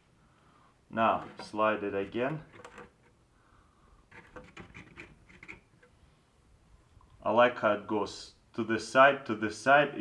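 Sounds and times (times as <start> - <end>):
plastic scraping and ticking: 1.2 - 3.2, 4.1 - 6.0
plastic squeaks: 1.2 - 3.2, 4.1 - 6.0.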